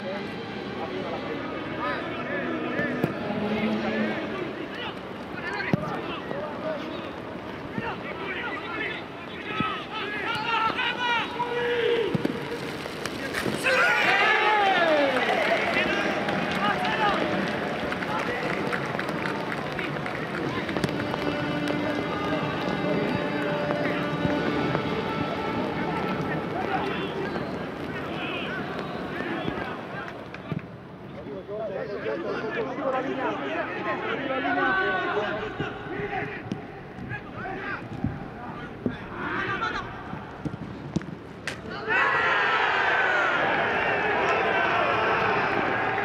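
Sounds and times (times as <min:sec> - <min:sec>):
players shouting: 0:01.8 - 0:30.6, 0:31.9 - 0:40.6, 0:41.4 - 0:46.0.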